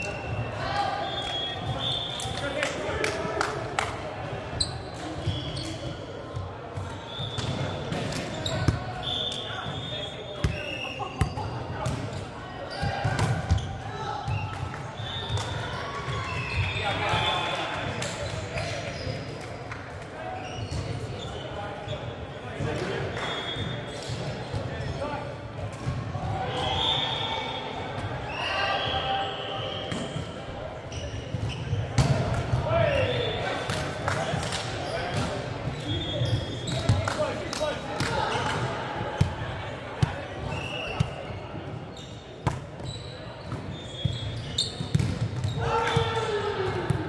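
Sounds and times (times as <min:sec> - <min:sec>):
sneakers squeaking on court: 0:04.6 - 0:06.1, 0:07.0 - 0:14.4, 0:20.4 - 0:22.1, 0:29.7 - 0:32.2, 0:34.2 - 0:37.0, 0:39.2 - 0:46.1.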